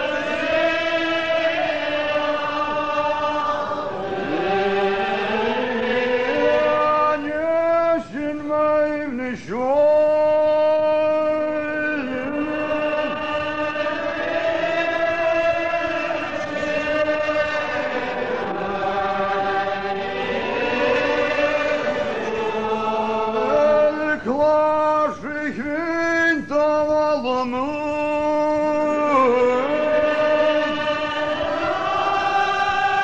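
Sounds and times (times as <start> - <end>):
congregation singing a psalm: 0.0 - 33.0
man singing ornamented line: 4.2 - 18.1, 23.0 - 31.3.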